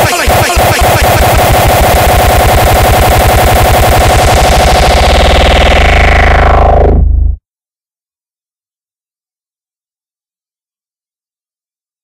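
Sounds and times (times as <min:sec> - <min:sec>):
fast distorted kick drum roll: 0:00.0 - 0:07.3.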